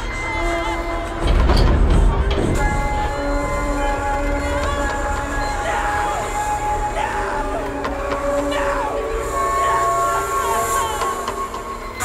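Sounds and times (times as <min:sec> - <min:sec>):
film score held chord: 0:00.0 - 0:12.0.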